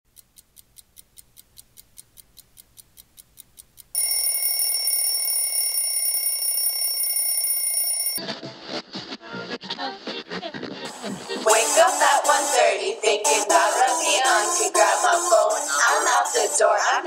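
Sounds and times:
digital alarm clock beeping: 4.0 - 8.2
electronic ringing: 4.0 - 8.2.

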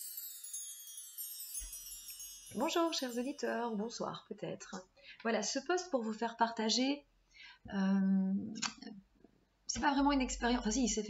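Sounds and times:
wind chimes ringing: 0.0 - 4.0.

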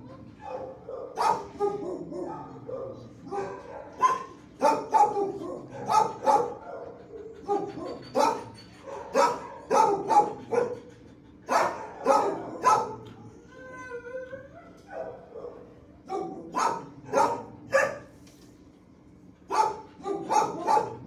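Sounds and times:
dogs barking: 0.0 - 13.2, 14.8 - 18.1, 19.4 - 21.0
dog whining: 12.0 - 15.6.

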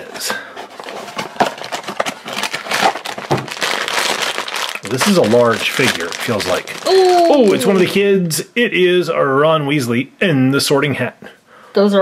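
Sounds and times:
cardboard box being opened: 0.0 - 7.9
foil bag crinkling: 0.7 - 8.0.

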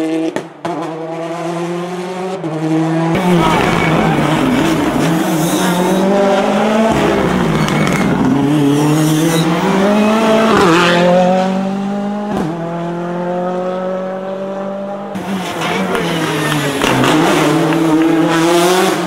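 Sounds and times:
rally car engine revving: 0.0 - 19.0.

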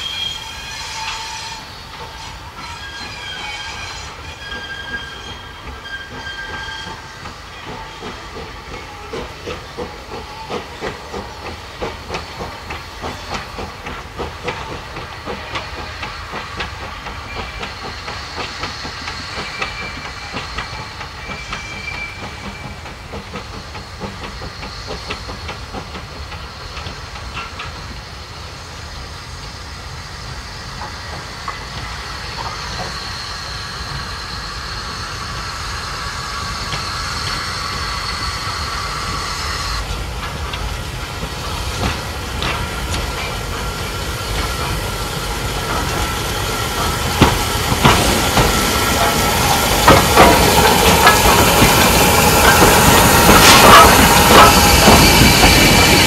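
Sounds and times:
steam hiss: 0.0 - 56.0
steam locomotive chuffing: 0.0 - 56.0.

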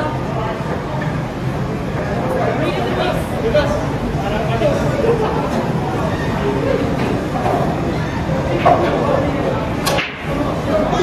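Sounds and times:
murmured chatter: 0.0 - 11.0
pool balls cracking: 8.5 - 10.5.

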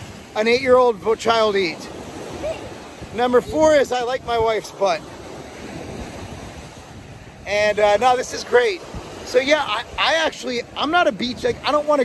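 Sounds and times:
ocean surf on beach: 0.0 - 12.0
wind rumbling on microphone: 0.0 - 12.0.

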